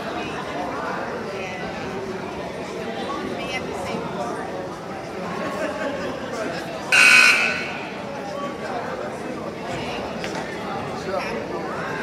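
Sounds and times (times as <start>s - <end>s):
crowd chatter: 0.0s - 12.0s
scoreboard horn buzz: 6.9s - 7.9s.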